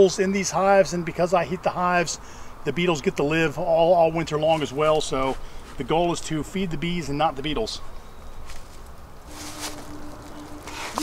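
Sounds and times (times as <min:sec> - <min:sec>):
short rustling hisses: 0:08.5 - 0:11.0
honeybee buzzing: 0:09.2 - 0:11.0.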